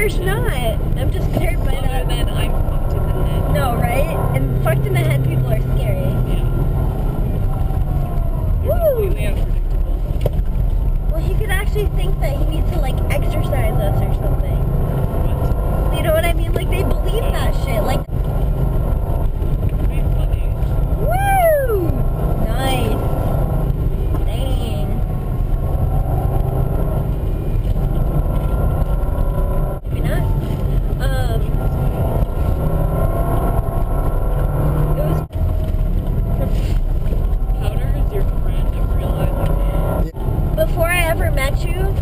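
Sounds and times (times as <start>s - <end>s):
car interior engine and tyre drone: 0.0s - 42.0s.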